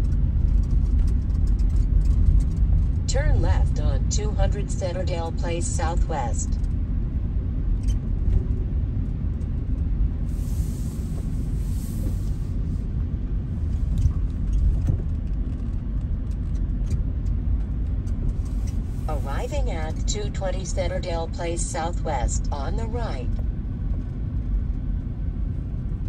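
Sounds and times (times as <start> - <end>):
car driving on snowy road: 0.0 - 26.0
brief hiss: 10.3 - 12.8.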